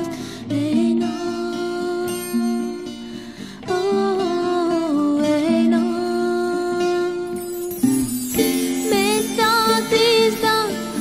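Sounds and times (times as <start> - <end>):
instrumental accompaniment: 1.0 - 11.0.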